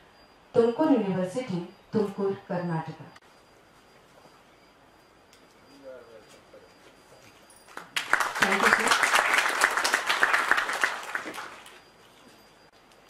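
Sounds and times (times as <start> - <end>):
audience applauding: 7.7 - 11.8.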